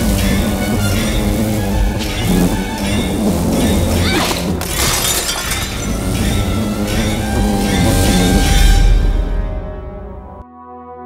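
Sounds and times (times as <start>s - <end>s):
window glass shattering: 4.1s - 7.2s
orchestral film score: 5.8s - 10.8s.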